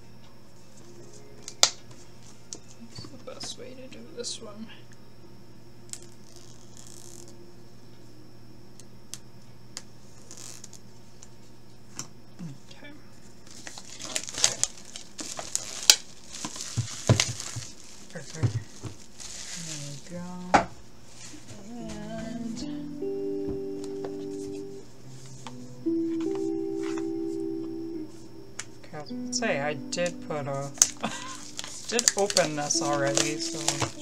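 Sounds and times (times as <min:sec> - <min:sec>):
soft background music: 0:00.0 - 0:09.0, 0:21.6 - 0:34.0
cardboard packaging rustling: 0:13.4 - 0:20.3, 0:30.8 - 0:34.0.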